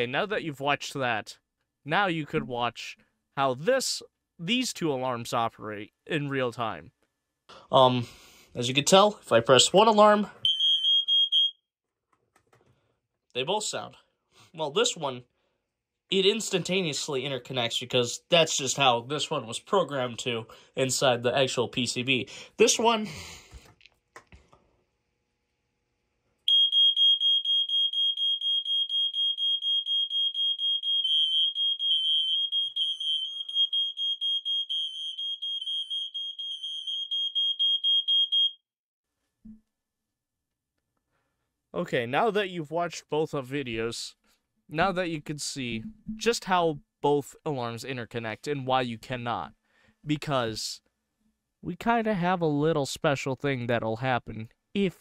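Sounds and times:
smoke alarms sounding: 0:10.4 - 0:11.6, 0:26.5 - 0:38.7.

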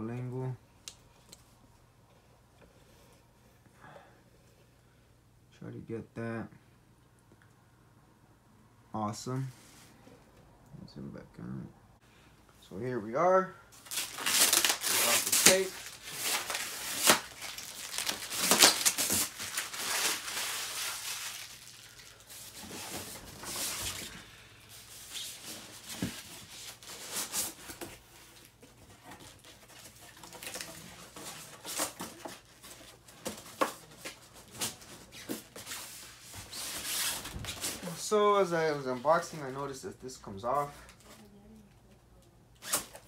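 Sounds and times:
packing tape tearing: 0:13.8 - 0:22.6, 0:42.6 - 0:43.0.

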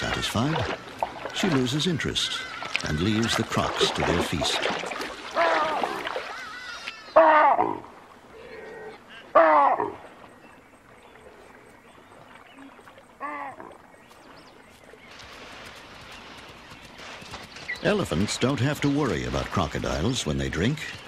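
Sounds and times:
pitched animal calls: 0:05.3 - 0:10.0.

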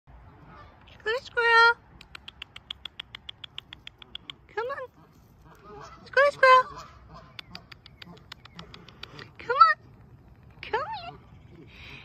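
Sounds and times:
squirrel chattering: 0:02.0 - 0:04.6, 0:07.1 - 0:09.3.

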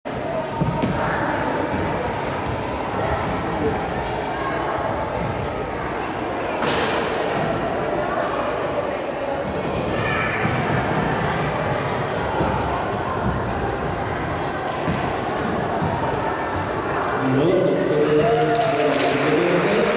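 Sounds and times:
trampoline thuds and creaks: 0:00.1 - 0:17.2.

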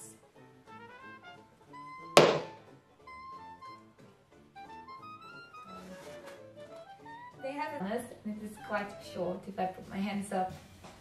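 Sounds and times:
light background music: 0:00.0 - 0:11.0
boot thunk on floor: 0:02.2 - 0:02.6.

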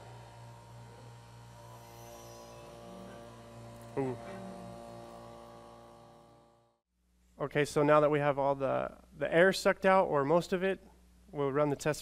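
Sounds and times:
vacuum pump humming: 0:00.0 - 0:06.8
electrical hum: 0:00.0 - 0:11.6.

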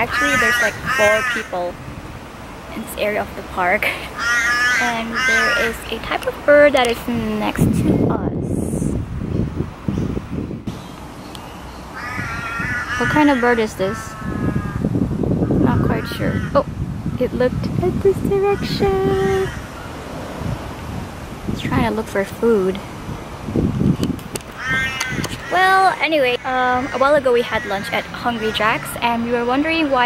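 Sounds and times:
drawn-out bird call: 0:00.0 - 0:01.7, 0:02.7 - 0:06.4, 0:10.7 - 0:16.7, 0:18.5 - 0:20.2, 0:24.4 - 0:30.0
wind rumble on microphone: 0:00.0 - 0:30.0
crow cawing: 0:00.1 - 0:01.6, 0:04.2 - 0:05.8, 0:12.0 - 0:14.9, 0:15.5 - 0:16.6, 0:24.5 - 0:28.6
microphone handling noise: 0:22.9 - 0:25.6.

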